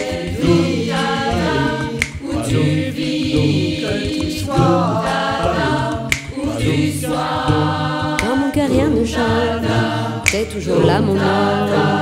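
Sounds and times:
a cappella ensemble singing: 0.0 - 12.0.

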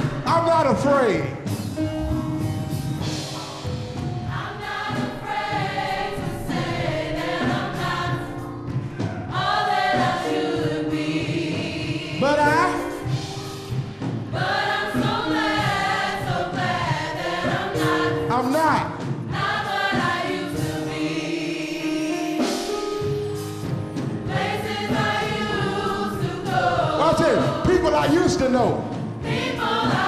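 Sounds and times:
gospel choir singing: 0.0 - 30.0
instrumental backing: 0.0 - 30.0.

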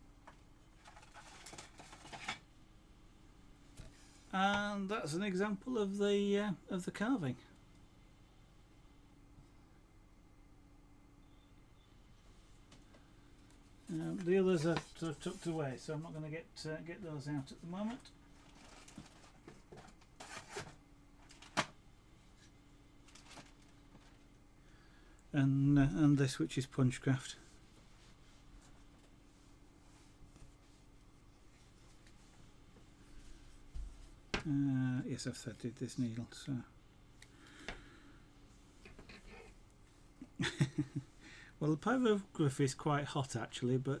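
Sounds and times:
low steady hum: 0.0 - 44.0
rustling and scraping of cloth: 13.9 - 15.8, 17.7 - 20.8
handling rustle: 18.3 - 21.6.

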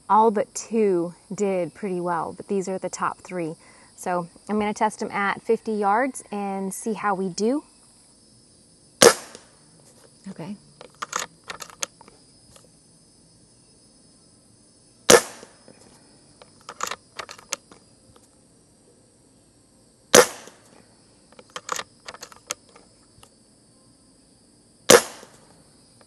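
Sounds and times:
air rifle shots: 9.0 - 9.6, 15.1 - 15.6, 20.1 - 20.7, 24.9 - 25.4
mechanical cocking clicks: 10.8 - 11.9, 16.6 - 17.7, 21.4 - 22.6.

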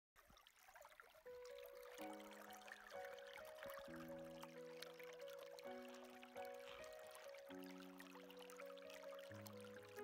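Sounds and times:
underwater stream flowing: 0.2 - 10.0
soft background music: 1.1 - 10.0.

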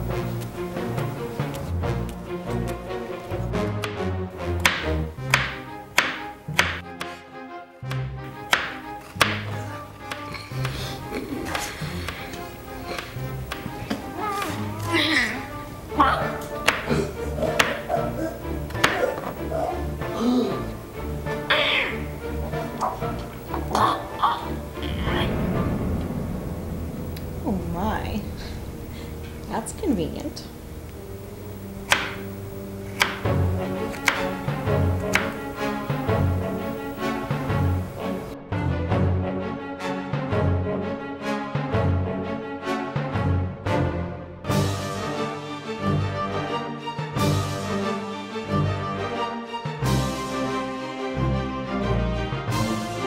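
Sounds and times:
background music with low notes: 0.0 - 53.0
knife chopping on cutting board: 3.8 - 7.2, 7.9 - 10.8, 16.6 - 17.8, 18.7 - 19.3, 31.9 - 32.2, 33.0 - 33.3, 33.9 - 34.3, 35.0 - 35.4.

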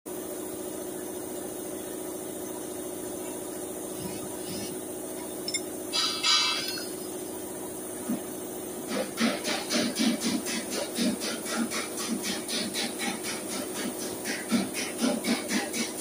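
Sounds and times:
machine humming: 1.7 - 9.3.

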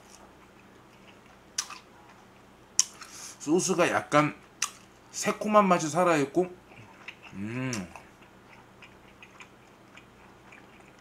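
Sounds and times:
close-up chewing: 0.0 - 3.2, 6.6 - 11.0
wet mouth clicks: 2.8 - 3.1.

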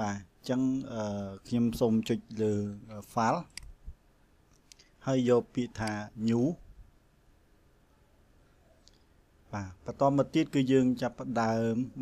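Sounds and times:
computer mouse clicks: 3.5 - 3.8, 4.5 - 4.9.

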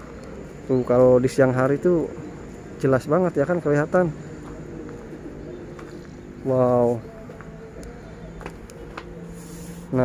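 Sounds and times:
dove cooing: 4.1 - 7.4.

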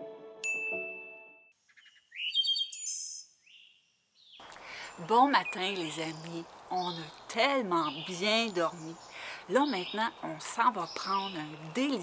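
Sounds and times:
songbirds chirping: 1.6 - 12.0
buzzy bird trill: 1.7 - 3.7.

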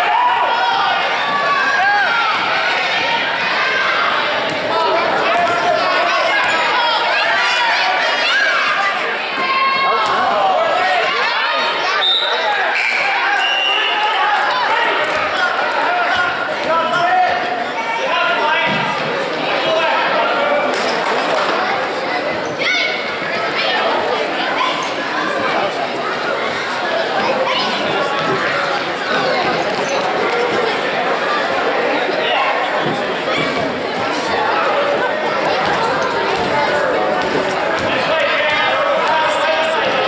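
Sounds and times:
shouts and chatter: 0.0 - 40.0.

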